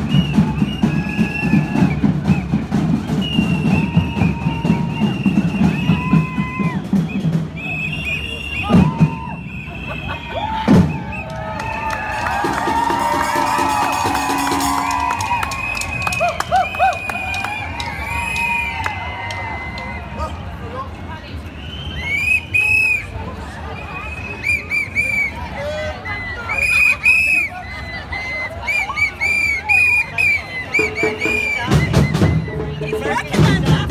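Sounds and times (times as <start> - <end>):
crowd cheering and whooping: 0.0 - 2.4, 3.5 - 20.4
whistle short blasts: 0.0 - 11.3, 21.4 - 23.2, 23.8 - 32.8
street drum band playing: 0.0 - 18.8, 30.1 - 33.9.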